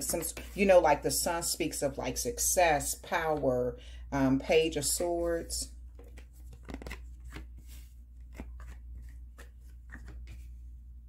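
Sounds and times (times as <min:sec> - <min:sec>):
cards tapping and sliding on cloth: 0:06.0 - 0:10.6.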